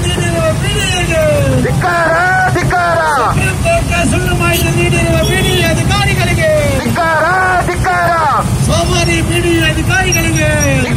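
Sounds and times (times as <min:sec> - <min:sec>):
engines rumbling: 0:00.0 - 0:10.9
voice calling through loudspeakers: 0:00.0 - 0:10.9.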